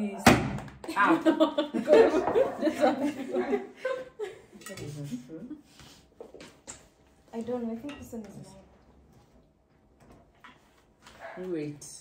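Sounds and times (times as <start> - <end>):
people laughing: 0.9 - 4.6.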